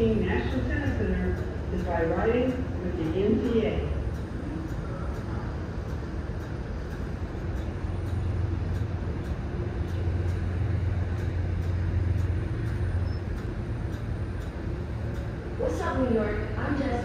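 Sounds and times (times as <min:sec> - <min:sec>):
subway train motor hum: 0:00.0 - 0:17.0.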